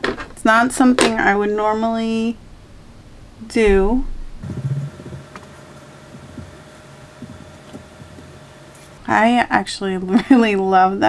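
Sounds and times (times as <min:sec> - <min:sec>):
faint steady hum: 0:00.0 - 0:11.0
soft rustles: 0:04.4 - 0:09.1.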